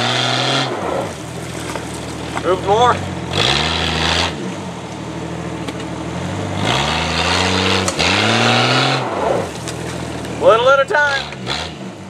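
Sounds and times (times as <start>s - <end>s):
car engine revving hard: 0.0s - 12.0s.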